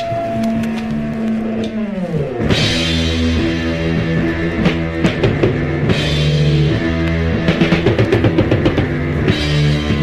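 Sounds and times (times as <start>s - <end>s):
heavy psychedelic rock music: 0.0s - 10.0s.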